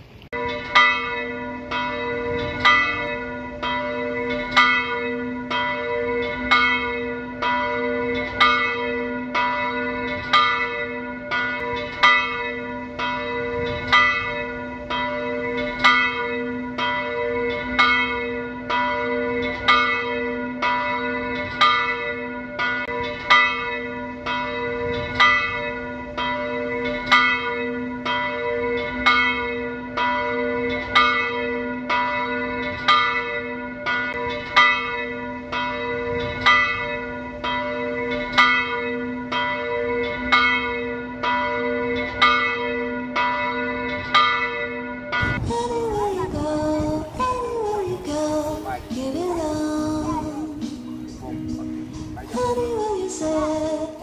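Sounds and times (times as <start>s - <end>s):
church bells ringing: 0.0s - 54.0s.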